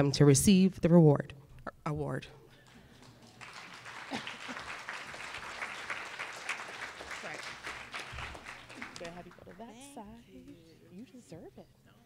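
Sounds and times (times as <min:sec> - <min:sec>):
audience applauding: 0:02.6 - 0:10.0.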